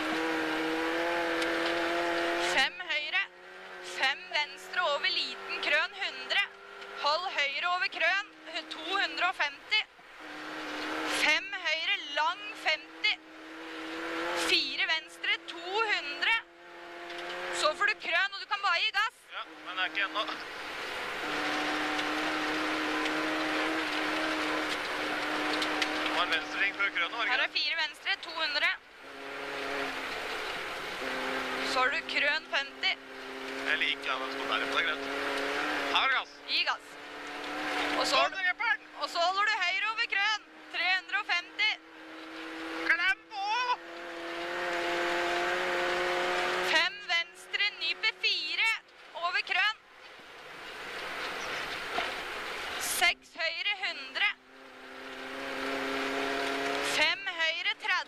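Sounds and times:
rally car engine: 0.0s - 58.0s
tyre and road noise: 0.0s - 58.0s.

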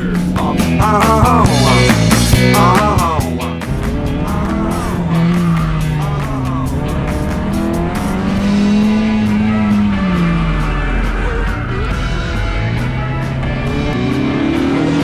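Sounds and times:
car engine revving: 0.0s - 15.0s
rock music: 0.0s - 15.0s.

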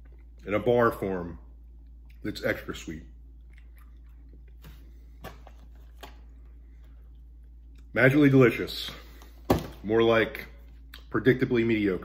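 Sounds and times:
steady low hum: 0.0s - 12.0s
chewing cereal bar: 3.3s - 7.9s.

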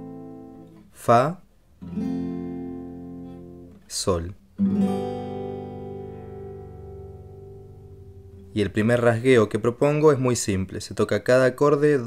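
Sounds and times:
acoustic guitar chord ringing: 0.0s - 0.9s, 1.8s - 3.8s, 4.5s - 9.4s.

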